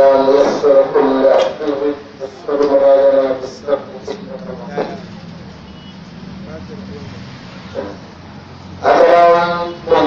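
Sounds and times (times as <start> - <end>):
voice: 0.0 - 5.2, 8.8 - 10.0.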